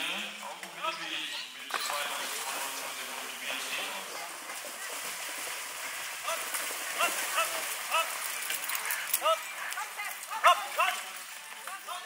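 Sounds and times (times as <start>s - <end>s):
water splashing: 1.6s - 12.0s.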